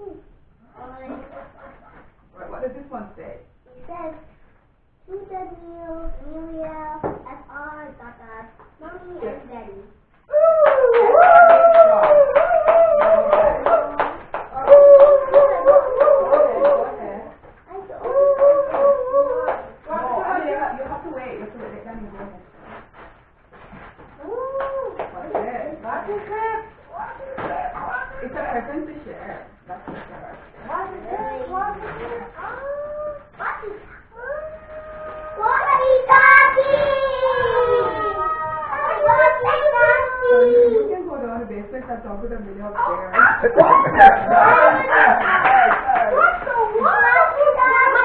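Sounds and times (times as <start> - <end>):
hands clapping in rhythm: 10.6 - 17.1, 18.0 - 19.8, 45.0 - 46.5.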